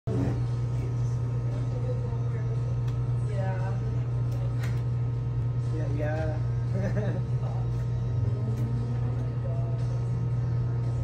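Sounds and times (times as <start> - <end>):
steady low hum: 0.1 - 11.0.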